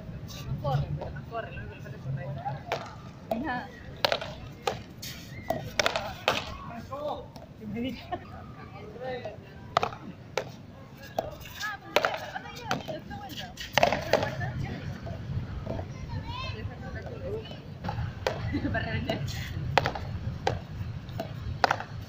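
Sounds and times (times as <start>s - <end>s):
ball hitting concrete wall: 2.6s - 6.7s, 9.2s - 13.0s, 13.6s - 14.5s, 17.8s - 22.0s
paddles striking ball: 2.7s - 4.9s, 5.5s - 6.6s, 9.2s - 13.0s, 13.6s - 14.4s, 17.8s - 22.0s.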